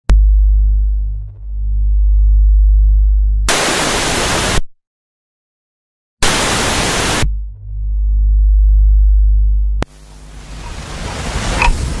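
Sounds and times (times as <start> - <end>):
deep steady bass tone: 0.0 - 3.8, 6.7 - 12.0
tv static hiss: 3.5 - 4.6, 6.2 - 7.3, 9.8 - 12.0.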